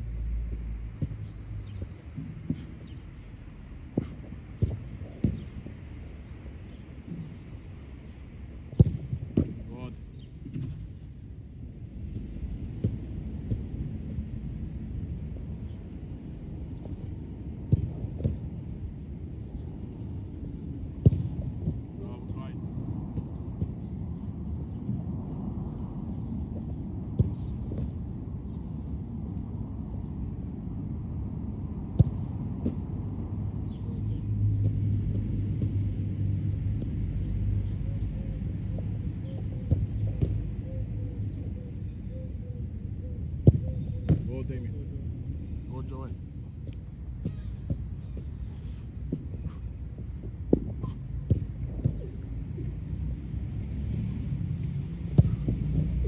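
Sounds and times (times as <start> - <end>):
football being kicked and caught: 3.9 - 5.7, 8.7 - 9.8, 10.4 - 11.0, 12.1 - 13.8, 17.7 - 18.6, 21.0 - 23.8, 27.1 - 28.6, 31.9 - 33.0, 34.6 - 35.9, 38.2 - 41.0, 43.4 - 44.3, 46.6 - 48.3, 50.1 - 52.2, 55.0 - 56.0.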